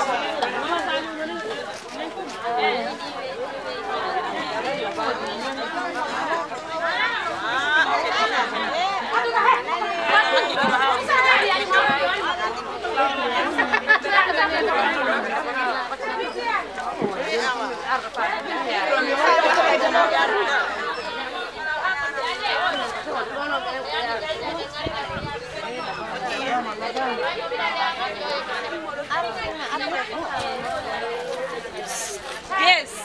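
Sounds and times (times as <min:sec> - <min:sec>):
people chattering: 0:00.0 - 0:33.0.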